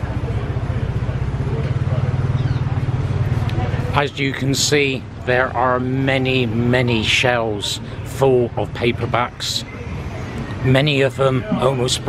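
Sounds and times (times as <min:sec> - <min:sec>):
faint voices: 0:00.0 - 0:12.0
vehicle engine idling: 0:00.0 - 0:12.0.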